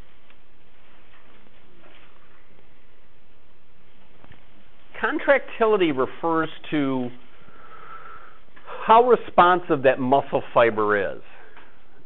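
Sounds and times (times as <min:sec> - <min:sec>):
recording hiss: 0:02.0 - 0:12.0.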